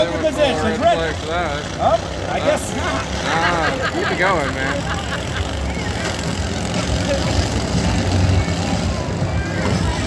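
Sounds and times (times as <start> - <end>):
crowd voices: 0.0 - 10.0
lawn mower engines running: 0.0 - 10.0.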